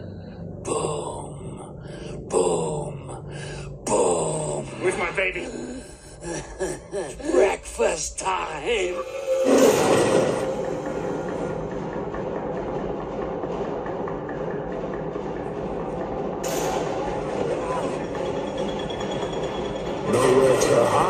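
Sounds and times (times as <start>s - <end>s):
film score and sound effects: 0.0s - 21.0s.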